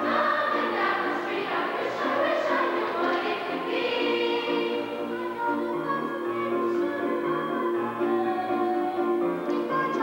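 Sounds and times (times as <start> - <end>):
chorus singing: 0.0 - 8.8.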